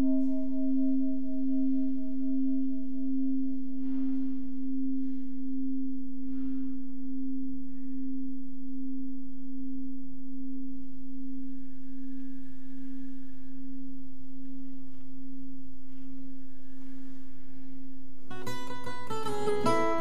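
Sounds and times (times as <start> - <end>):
pulsing overtone: 0.0 - 13.8
singing bowl tone: 0.0 - 20.0.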